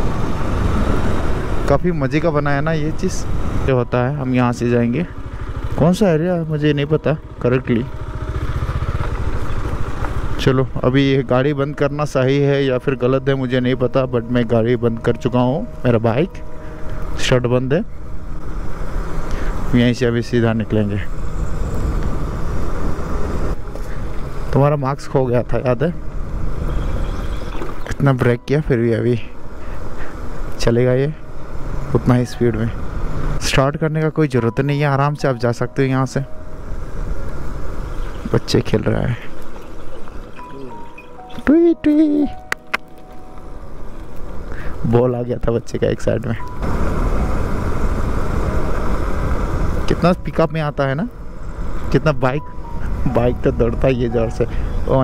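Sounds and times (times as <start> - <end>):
tyre and road noise on dirt: 0.0 - 55.0
motorcycle engine at low revs: 2.5 - 12.1, 21.0 - 24.7, 46.6 - 50.0.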